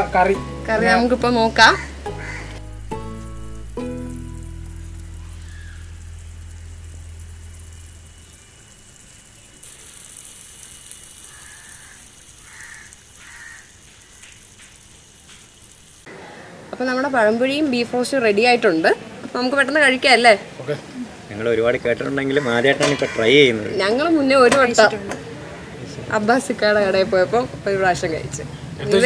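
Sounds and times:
background music with low bass: 0:00.0 - 0:08.2
meat bubbling and sizzling in a pot: 0:01.8 - 0:16.1.

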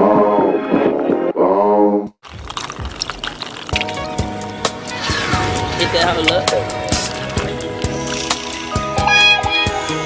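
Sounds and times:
liquid pouring into cup: 0:02.2 - 0:05.0
music with steady tones: 0:03.8 - 0:10.0.

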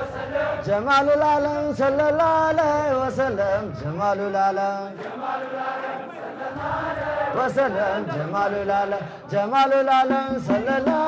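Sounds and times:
men chanting through a microphone: 0:00.0 - 0:11.0.

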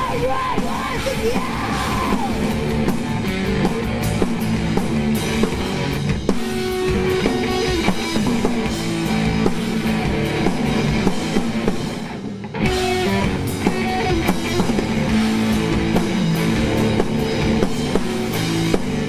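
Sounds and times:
bass guitar: 0:00.0 - 0:19.0
distorted electric guitar: 0:00.0 - 0:19.0
drum kit: 0:00.0 - 0:19.0.

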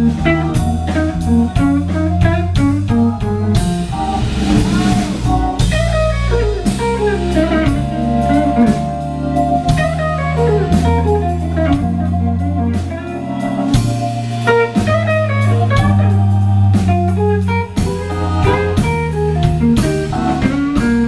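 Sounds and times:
drum kit with cymbals: 0:00.0 - 0:21.0
electric bass: 0:00.0 - 0:21.0
electric guitar solo: 0:05.4 - 0:19.4.

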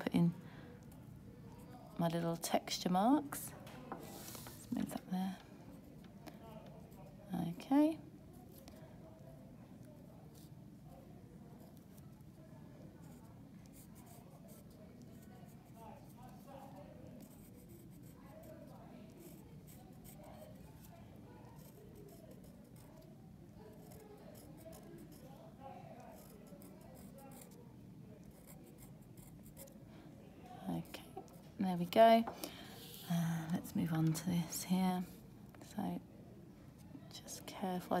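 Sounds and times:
low room hum: 0:00.0 - 0:38.0
pen scratching on paper: 0:13.0 - 0:15.8, 0:16.7 - 0:23.1, 0:23.7 - 0:25.2, 0:26.0 - 0:27.6, 0:28.2 - 0:29.8.

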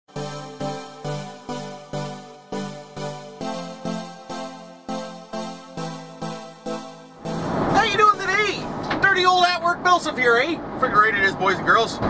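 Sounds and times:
man speaking: 0:07.7 - 0:10.2
van engine and road noise: 0:08.5 - 0:12.0.

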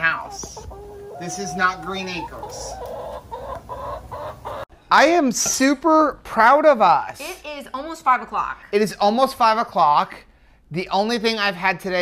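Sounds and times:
hen clucking: 0:00.0 - 0:04.7.

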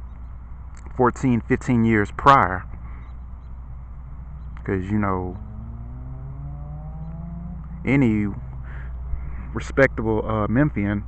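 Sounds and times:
city traffic rumble: 0:00.0 - 0:11.0
vehicle engine accelerating: 0:02.7 - 0:10.6.

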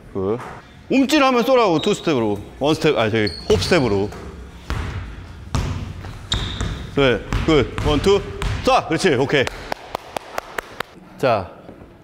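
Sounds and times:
high squeak: 0:03.2 - 0:04.2, 0:06.3 - 0:06.8
basketball bouncing on hardwood: 0:04.7 - 0:08.7.

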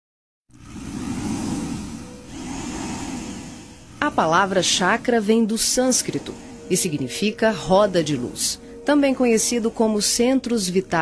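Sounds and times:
low rushing noise: 0:00.5 - 0:11.0.

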